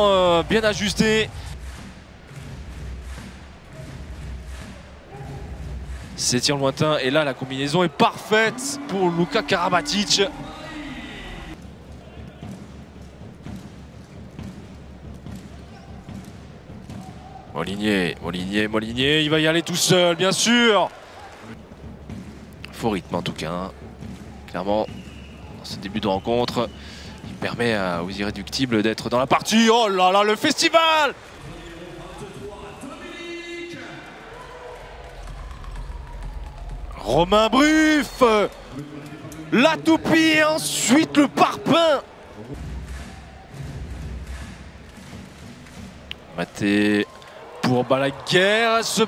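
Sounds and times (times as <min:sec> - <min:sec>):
players calling: 0:00.0 - 0:01.5, 0:03.2 - 0:13.8, 0:15.3 - 0:43.6
murmur of arena crowd: 0:00.0 - 0:49.0.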